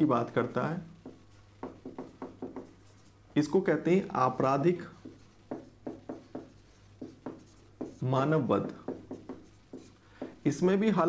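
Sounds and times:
marker writing on whiteboard: 0:00.0 - 0:11.0.

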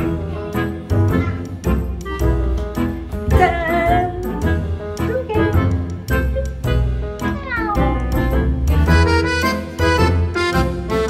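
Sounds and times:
bouncy background music: 0:00.0 - 0:11.0.

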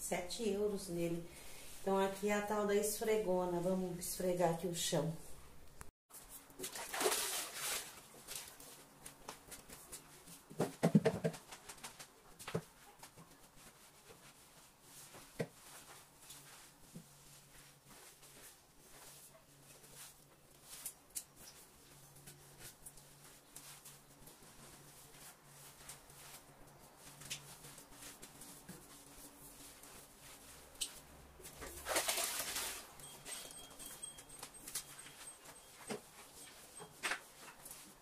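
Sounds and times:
mop scraping tiled floor: 0:07.0 - 0:08.6, 0:23.4 - 0:38.0.

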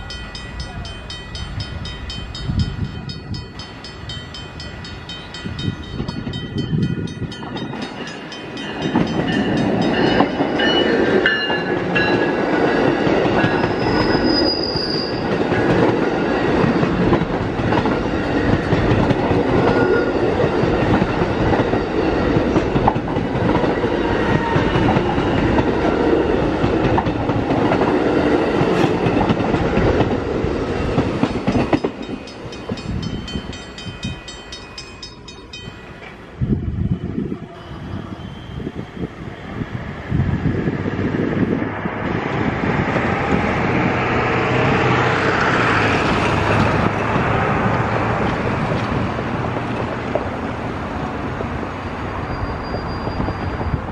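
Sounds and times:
train wheels rushing on rails: 0:00.0 - 0:53.9.

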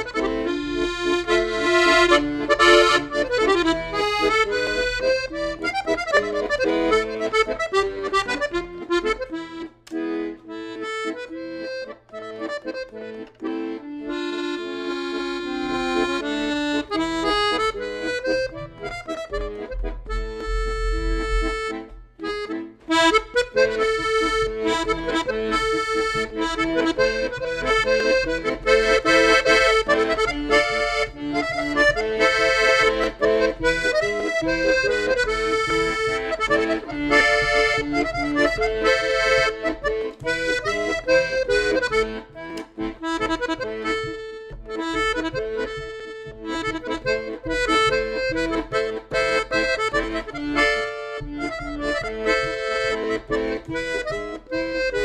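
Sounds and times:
accordion playing a tune: 0:00.0 - 0:55.0.

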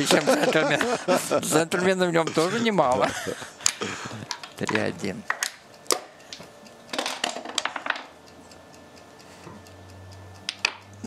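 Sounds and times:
checkers clicking on board: 0:04.3 - 0:08.2.

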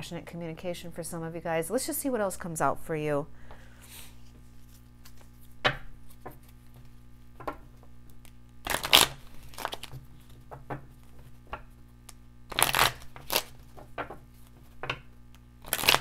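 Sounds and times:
cards being shuffled: 0:03.9 - 0:07.0, 0:08.0 - 0:11.4, 0:12.1 - 0:14.8, 0:15.6 - 0:16.0.

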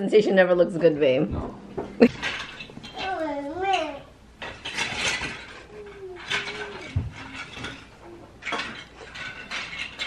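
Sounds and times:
plastic toys clattering on wood: 0:02.1 - 0:10.0.

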